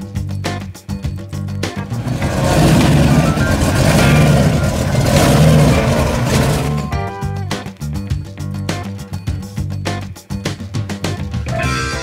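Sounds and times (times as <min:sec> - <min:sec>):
rough loud car engine revving: 0:01.8 - 0:07.0.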